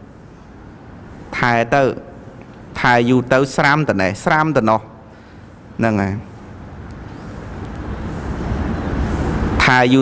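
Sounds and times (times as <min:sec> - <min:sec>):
vehicle passing rumble: 0:06.8 - 0:10.0.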